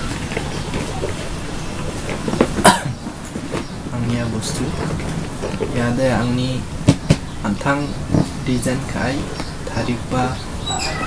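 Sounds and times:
person coughing: 2.6s - 3.0s.

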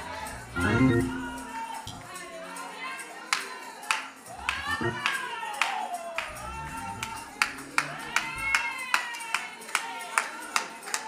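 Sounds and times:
sharp hand claps: 3.3s - 6.4s, 7.0s - 11.0s.

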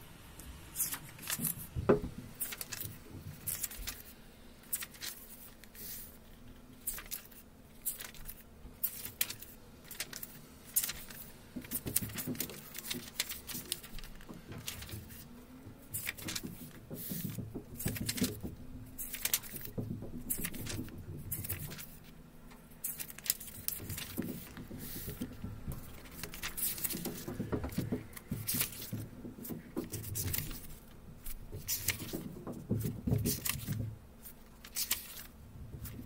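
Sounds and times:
book pages turning: 0.8s - 22.2s, 22.8s - 36.0s
fingers handling paper: 0.8s - 36.0s
page flap: 2.4s - 4.1s, 4.7s - 6.2s, 6.8s - 15.3s, 15.9s - 22.0s, 22.8s - 36.0s.

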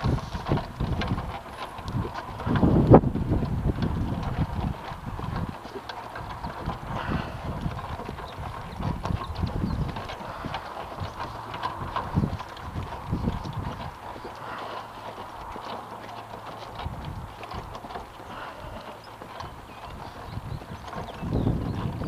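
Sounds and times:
horse hooves clip-clopping on dirt: 0.0s - 22.0s.

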